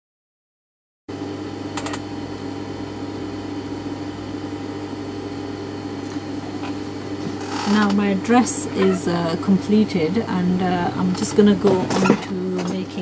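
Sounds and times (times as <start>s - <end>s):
sewing machine motor hum: 1.4s - 13.0s.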